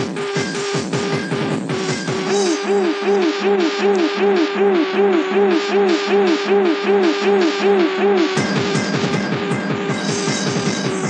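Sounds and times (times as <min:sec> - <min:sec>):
hi-hats over steady pulse: 0:00.0 - 0:11.0
synth riff gliding: 0:00.0 - 0:11.0.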